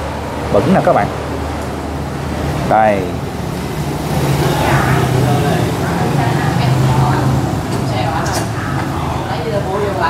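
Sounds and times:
indistinct voices: 2.6 - 10.0.

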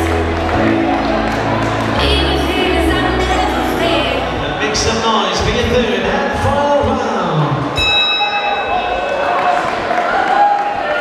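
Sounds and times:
crowd voices in a large hall: 0.0 - 11.0
boxing ring bell ringing: 7.8 - 9.2.

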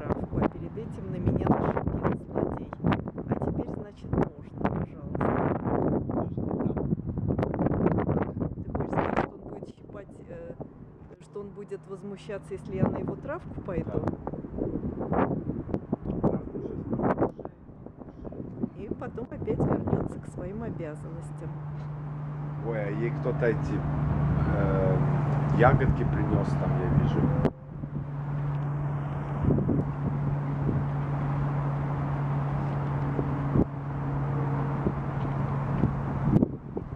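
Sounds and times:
urban background noise: 0.0 - 36.9
wind buffeting microphone: 0.0 - 36.9
low mechanical hum: 8.7 - 36.9.

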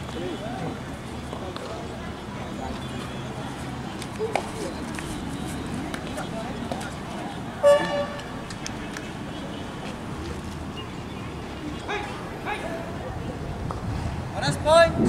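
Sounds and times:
voices of players and spectators: 0.0 - 15.0
loud horn toot: 7.6 - 8.3.

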